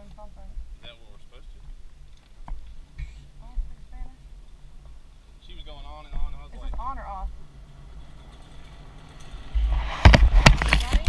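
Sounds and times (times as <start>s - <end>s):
pickup truck driving past: 7.0s - 11.0s.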